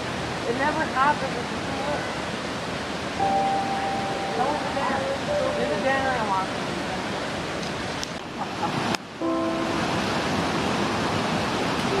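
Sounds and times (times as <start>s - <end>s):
waterfall rushing: 0.0s - 12.0s
long held tone: 3.2s - 6.8s, 9.2s - 10.0s.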